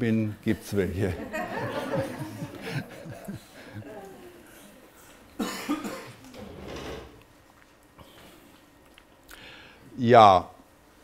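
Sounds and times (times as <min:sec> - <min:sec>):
person coughing: 0:05.0 - 0:06.2.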